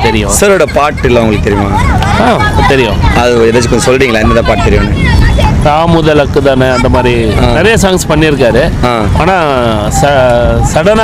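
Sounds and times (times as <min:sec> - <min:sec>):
men talking: 0:00.0 - 0:11.0
street traffic rumble: 0:00.0 - 0:11.0.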